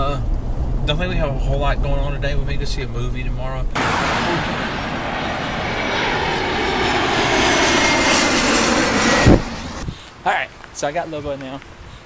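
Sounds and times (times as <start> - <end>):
jet airliner engines roaring: 3.7 - 10.1.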